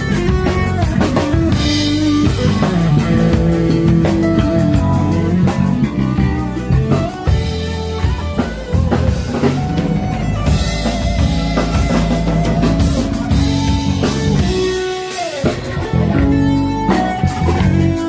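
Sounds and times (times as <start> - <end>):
drum kit: 0.0 - 18.0
electric guitar: 0.0 - 18.0.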